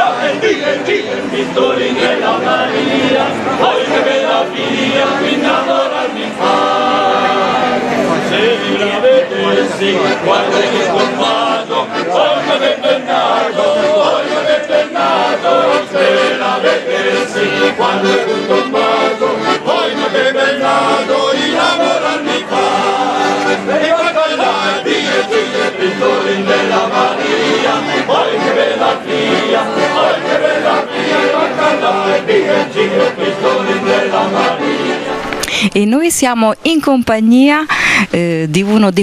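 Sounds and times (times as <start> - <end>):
group singing unaccompanied: 0.0 - 35.4
accordions playing chords: 0.0 - 39.0.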